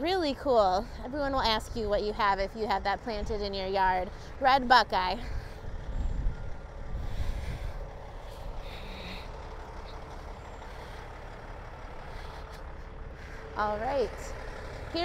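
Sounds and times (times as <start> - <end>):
truck engine rumbling: 0.0 - 15.0.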